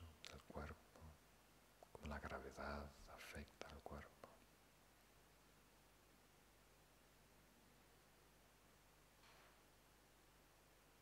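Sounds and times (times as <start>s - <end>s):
man speaking softly: 0.0s - 1.2s, 1.8s - 4.4s.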